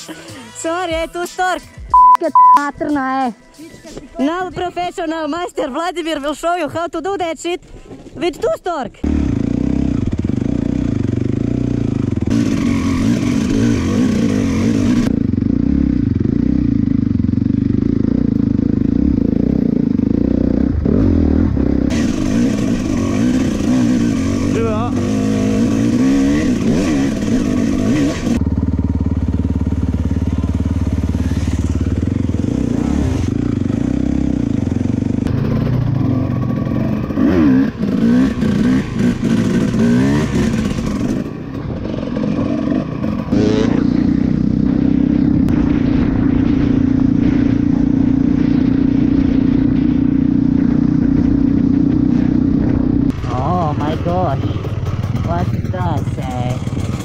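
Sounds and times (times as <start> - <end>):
dirt bike engines revving: 9.0 - 57.0.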